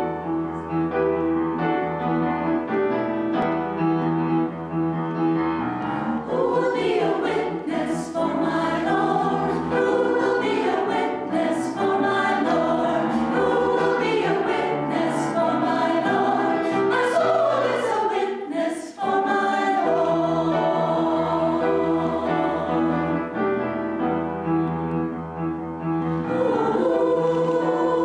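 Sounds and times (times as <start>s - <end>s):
women's choir singing: 6.2s - 23.6s, 26.1s - 28.0s.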